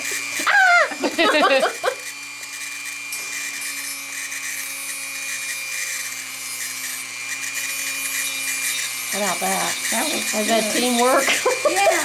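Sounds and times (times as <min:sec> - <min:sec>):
rotary tool grinding talon: 0:00.0 - 0:12.0.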